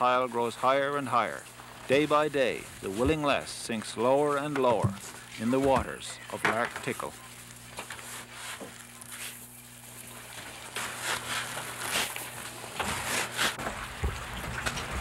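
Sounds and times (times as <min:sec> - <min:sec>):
low steady hum: 0:00.0 - 0:15.0
knocks and scrapes of handling: 0:04.3 - 0:09.5, 0:10.4 - 0:13.8.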